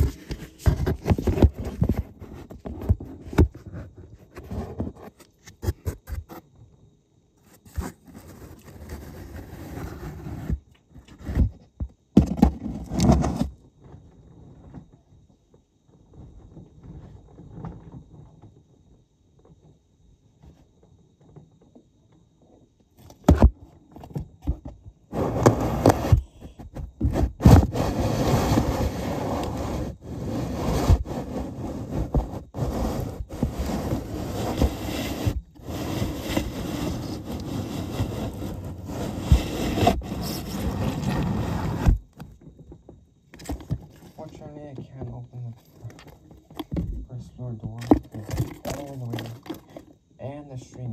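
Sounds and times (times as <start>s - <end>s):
toy elevator car scraping: 12.2s - 13.5s, 25.1s - 42.1s, 47.7s - 50.0s.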